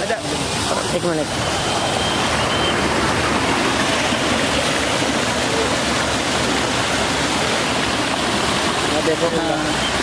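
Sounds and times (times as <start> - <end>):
water rushing through a channel: 0.0 - 10.0.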